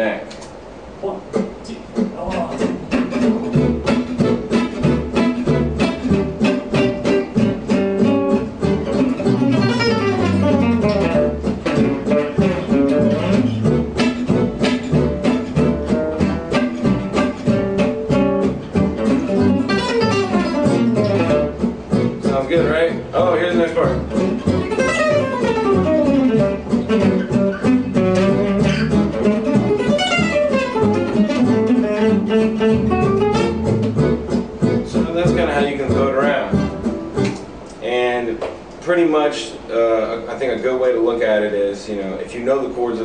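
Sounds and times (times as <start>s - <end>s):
acoustic guitar fast picked lines: 1.4s - 37.4s.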